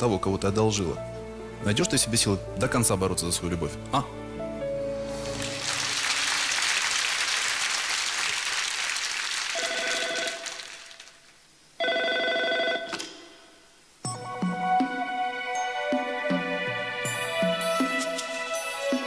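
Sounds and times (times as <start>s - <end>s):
studio audience applause: 5.2s - 11.2s
telephone bell ringing: 9.6s - 10.6s, 11.8s - 13.0s.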